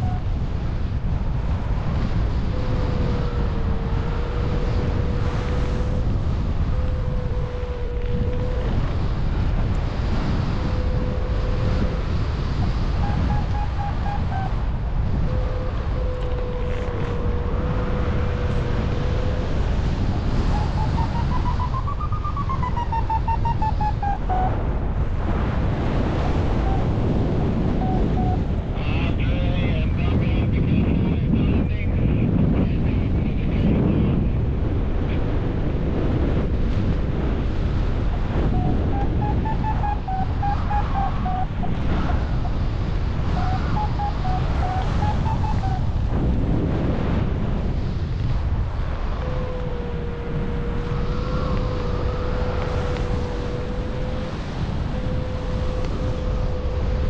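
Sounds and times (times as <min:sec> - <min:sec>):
wind rushing over microphone: 0:00.0 - 0:57.0
variometer electronic tones: 0:02.2 - 0:29.4, 0:38.0 - 0:46.4, 0:49.0 - 0:57.0.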